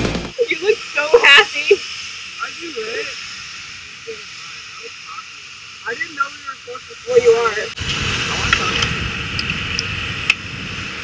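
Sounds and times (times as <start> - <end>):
steady hiss: 0.0 - 11.0
people talking and exclaiming: 0.3 - 3.3.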